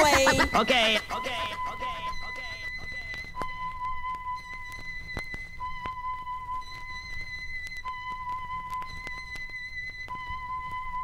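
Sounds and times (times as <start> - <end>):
high-pitched musical tone: 0.0 - 11.0.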